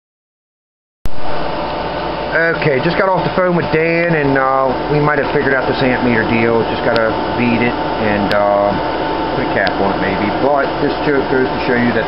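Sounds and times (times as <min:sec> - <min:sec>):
cooling fans whirring: 0:01.1 - 0:12.0
faint steady whine: 0:01.1 - 0:12.0
low electrical hum: 0:01.1 - 0:12.0.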